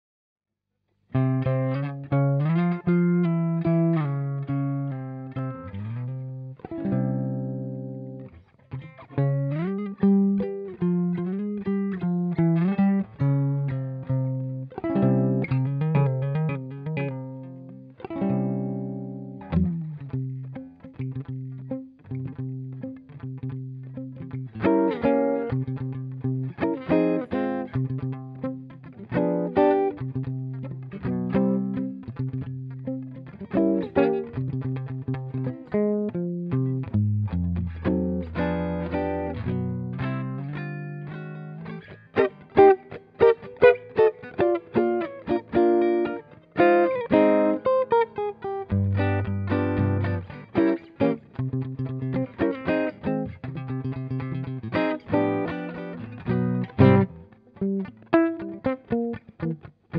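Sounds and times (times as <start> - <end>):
solo swing electric guitar: 1.1 - 59.9.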